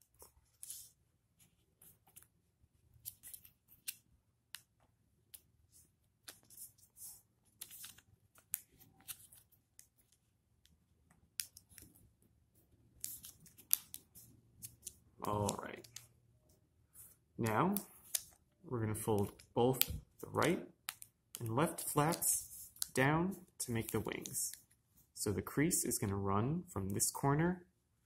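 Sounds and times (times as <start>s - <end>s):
paper crinkling and rustling: 6.2s - 9.6s.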